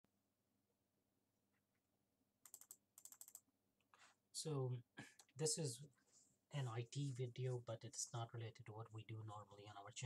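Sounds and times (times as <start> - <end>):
computer keyboard clicks: 2.4 - 3.5.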